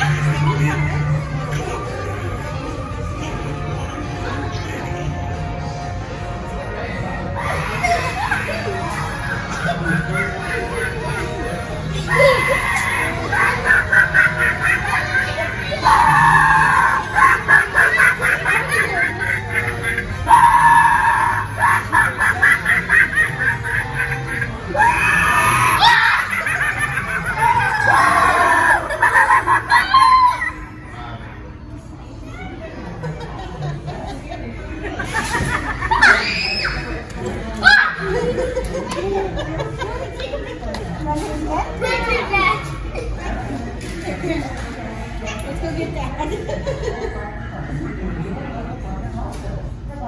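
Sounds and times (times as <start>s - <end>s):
cackling laughter: 7.4s - 30.7s
screaming: 15.8s - 17.4s, 20.3s - 21.8s, 24.8s - 26.3s, 36.0s - 36.9s
children's voices: 41.1s - 43.4s.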